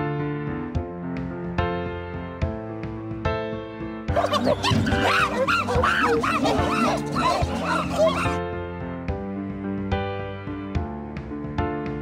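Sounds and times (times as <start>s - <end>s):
background music: 0.0s - 12.0s
chimpanzees calling: 4.1s - 8.4s.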